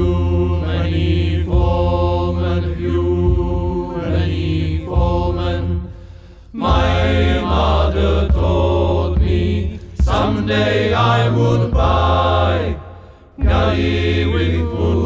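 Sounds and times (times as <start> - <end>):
deep wordless chanting voices: 0.0 - 15.0
low bass drone: 0.0 - 15.0.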